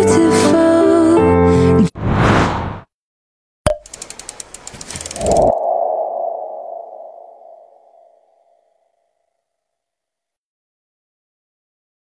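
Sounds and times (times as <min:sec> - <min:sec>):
quick run of sharp ticks: 0:03.7 - 0:05.5.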